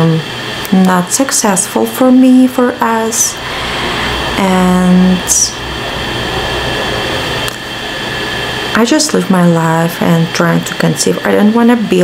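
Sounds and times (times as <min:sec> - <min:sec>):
low hum: 0:00.0 - 0:10.6
faint high steady tones: 0:02.0 - 0:10.6.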